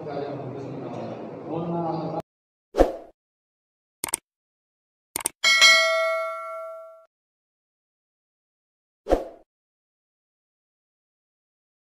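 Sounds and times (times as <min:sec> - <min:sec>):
bright bell ding: 0:05.4 - 0:07.1.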